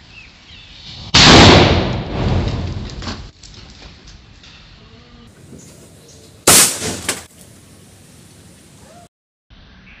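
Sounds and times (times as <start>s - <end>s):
firework rocket hissing and crackling: 0.8s - 1.2s.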